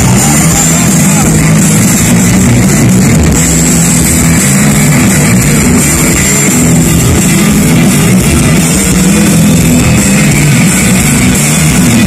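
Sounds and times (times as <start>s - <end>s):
crowd voices: 0.0s - 12.0s
live rock band playing: 0.0s - 12.0s.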